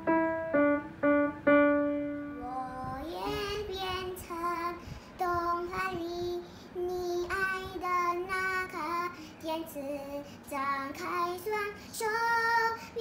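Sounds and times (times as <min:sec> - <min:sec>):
girl singing: 0:01.9 - 0:13.0.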